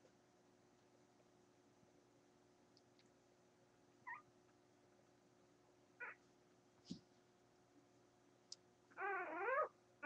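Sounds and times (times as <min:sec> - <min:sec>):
faint steady hum: 0:00.0 - 0:10.0
puppy squeaking: 0:04.0 - 0:04.2, 0:06.0 - 0:06.2, 0:08.9 - 0:09.7.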